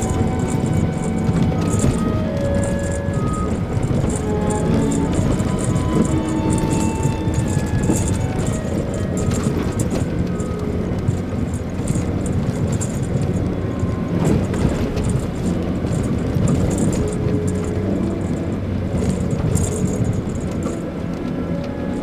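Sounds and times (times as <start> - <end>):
car engine and road drone: 0.0 - 22.0
light rattles and clicks: 0.0 - 22.0.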